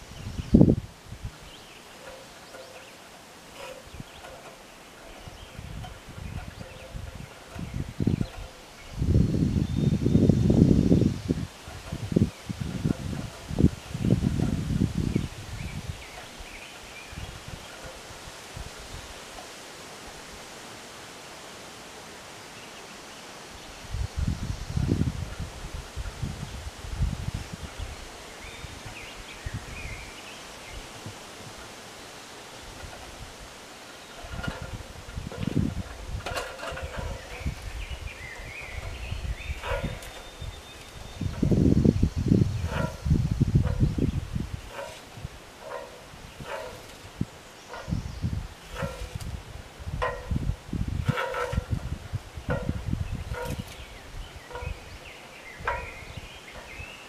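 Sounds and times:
wind buffeting microphone: 0.0 - 20.5, 23.5 - 57.0
leaves rustling: 0.0 - 57.0.

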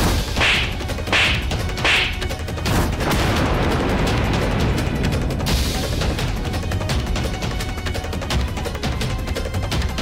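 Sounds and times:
whip-like swish hits: 0.0 - 2.8.

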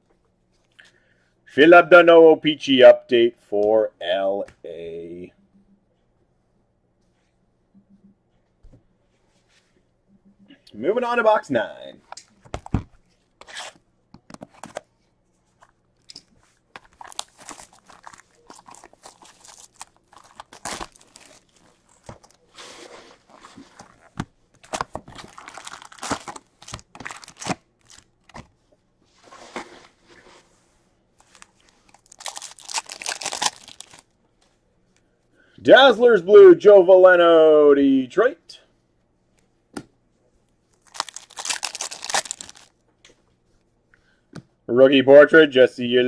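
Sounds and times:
card pack wrappers tearing: 16.8 - 22.4, 24.6 - 28.4, 31.2 - 34.0, 40.8 - 42.7.

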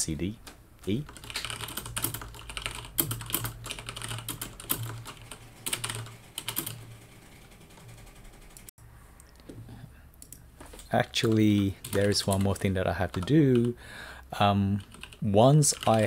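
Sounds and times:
keyboard typing: 1.0 - 8.7, 11.2 - 13.8, 14.8 - 16.0.

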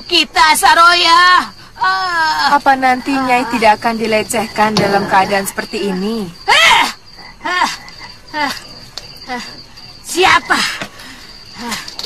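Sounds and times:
frogs croaking: 0.0 - 12.0
insects chirping: 0.0 - 12.0.

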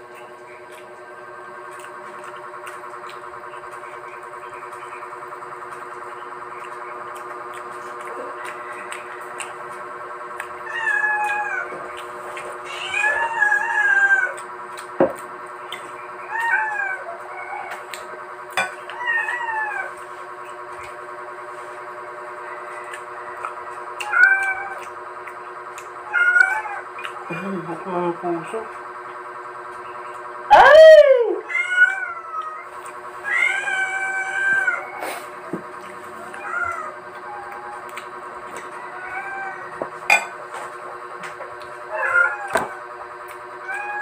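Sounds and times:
cat meowing: 10.6 - 11.7, 12.6 - 14.4, 16.2 - 17.8, 18.9 - 19.9, 24.0 - 24.8, 26.1 - 26.8, 30.5 - 35.0, 36.3 - 37.9, 38.7 - 39.8, 41.9 - 42.8, 43.6 - 44.0.

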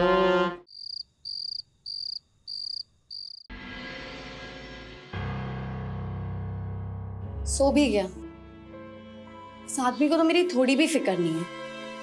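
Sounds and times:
cricket chirping: 0.7 - 3.5
background music: 3.5 - 12.0.

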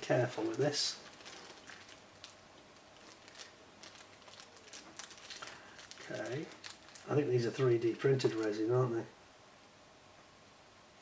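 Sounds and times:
plastic bag crinkling: 0.0 - 8.7.

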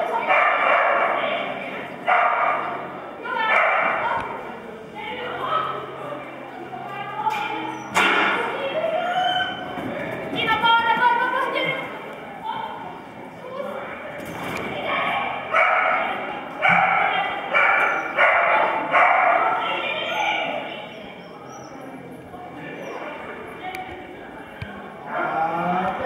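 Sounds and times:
murmur of people: 0.0 - 26.0
dog barking: 0.3 - 1.2, 2.1 - 2.7, 3.5 - 4.0, 15.5 - 19.6.

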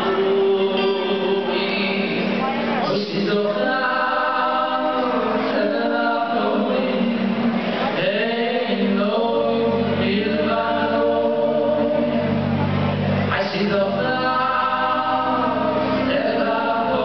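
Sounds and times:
two men singing: 0.0 - 12.6, 13.2 - 17.0
band accompaniment: 0.0 - 17.0
low bass: 0.0 - 17.0.

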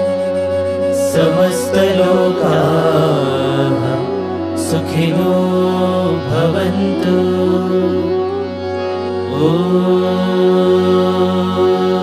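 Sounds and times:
steady drone: 0.0 - 12.0
devotional chanting: 0.8 - 12.0.

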